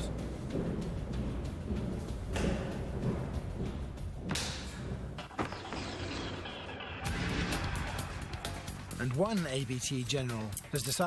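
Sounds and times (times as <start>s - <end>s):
low rumbling: 0.0s - 9.0s.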